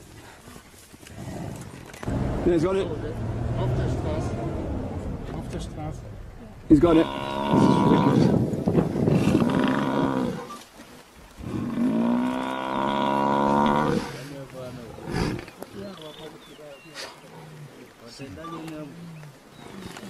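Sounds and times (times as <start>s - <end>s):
buffalo bellowing: 11.4s - 14.1s.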